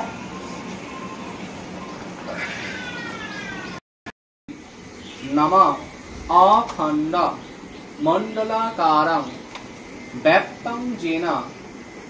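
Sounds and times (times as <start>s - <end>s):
long animal-like call: 2.3s - 3.8s.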